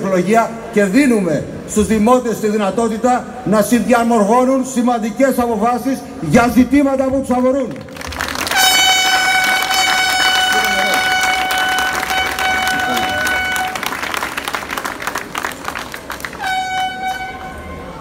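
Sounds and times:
crowd clapping: 7.7 - 17.6
air horn blasts: 8.4 - 14.2, 16.2 - 18.0.

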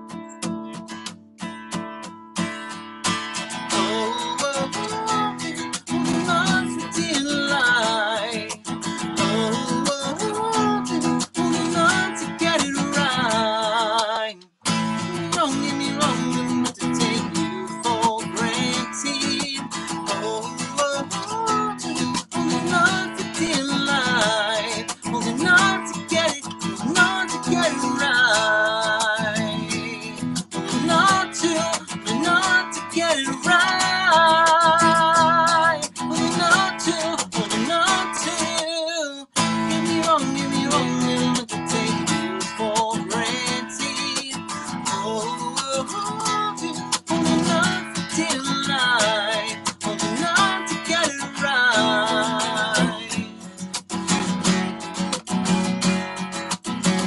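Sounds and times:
strummed acoustic guitar: 0.0 - 57.0
man singing with vibrato: 3.5 - 53.6.

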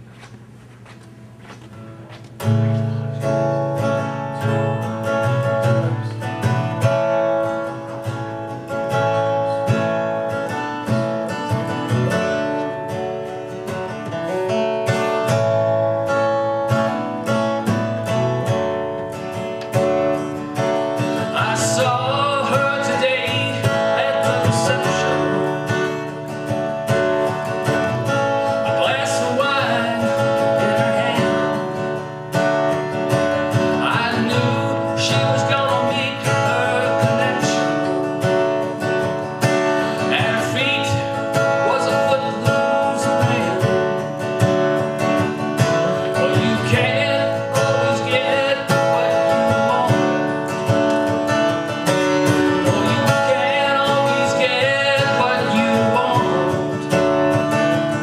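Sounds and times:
acoustic guitar strumming: 0.0 - 58.0
man singing: 3.8 - 6.5, 20.5 - 32.2, 33.0 - 38.8, 39.4 - 58.0.

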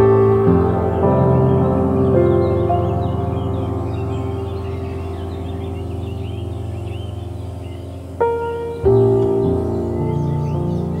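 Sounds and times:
ambient music low chord: 0.0 - 11.0
birds chirping: 0.0 - 11.0.

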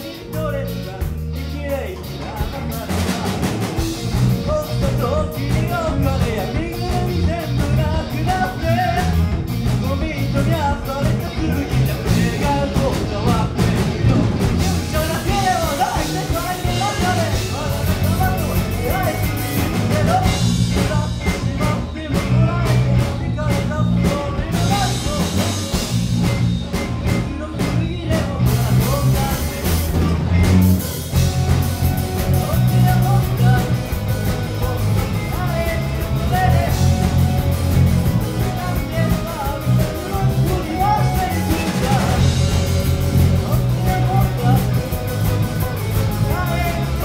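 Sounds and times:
bass guitar: 0.0 - 47.0
drum kit: 0.0 - 47.0
electric guitars: 0.0 - 47.0
person singing: 0.0 - 47.0.

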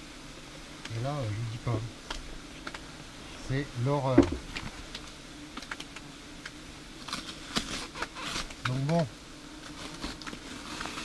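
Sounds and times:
wasps buzzing: 0.0 - 11.0
foil insulation crackling: 4.1 - 11.0.

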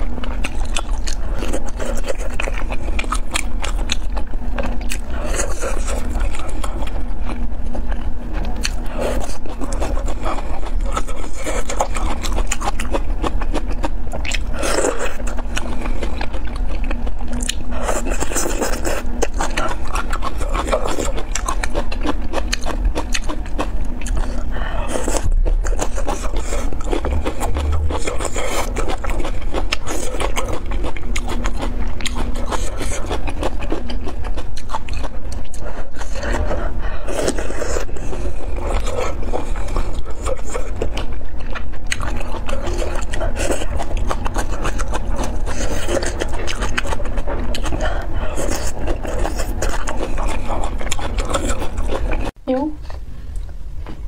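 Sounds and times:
wet clicking chewing: 0.0 - 36.6, 37.2 - 52.4
steady low hum: 0.0 - 54.0.

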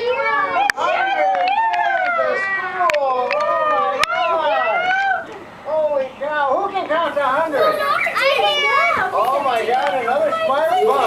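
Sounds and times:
young children shouting excitedly: 0.0 - 5.6, 7.3 - 11.0.

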